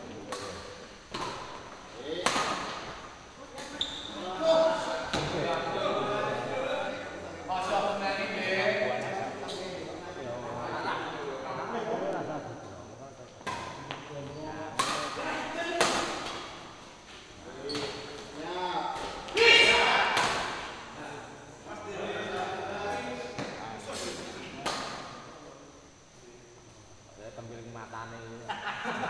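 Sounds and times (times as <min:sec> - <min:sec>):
players' voices: 0:00.0 - 0:28.6
person shouting: 0:19.3 - 0:20.0.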